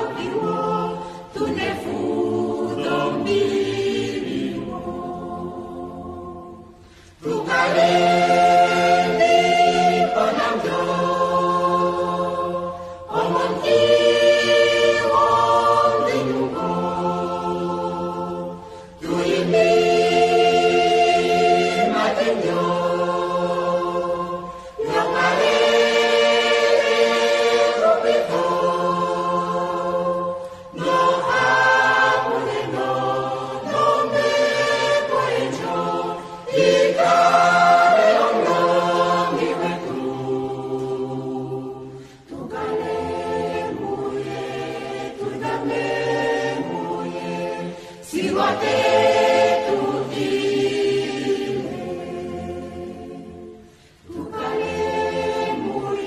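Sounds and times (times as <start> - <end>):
choir singing gospel: 0.0 - 56.0.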